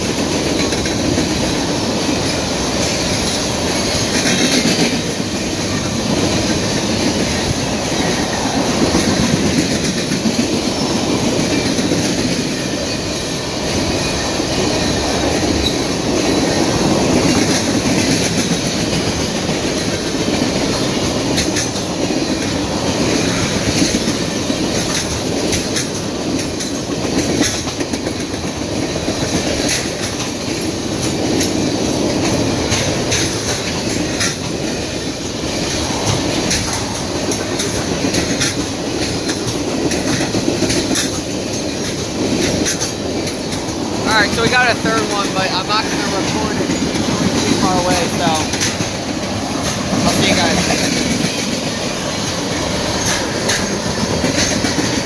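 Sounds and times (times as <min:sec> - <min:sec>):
freight train rumbling past: 0:00.0 - 0:55.0
wheels clacking over rail joints: 0:00.0 - 0:55.0.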